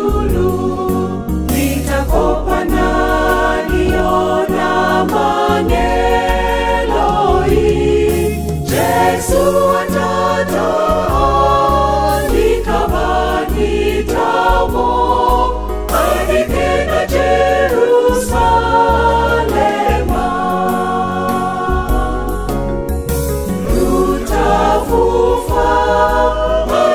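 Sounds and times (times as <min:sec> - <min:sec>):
choir singing gospel: 0:00.0 - 0:26.9
low musical accompaniment: 0:00.0 - 0:26.9.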